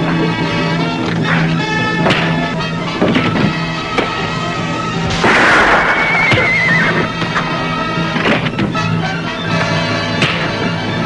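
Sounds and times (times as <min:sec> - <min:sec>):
background music: 0:00.0 - 0:11.0
horse whinnying: 0:05.4 - 0:07.3.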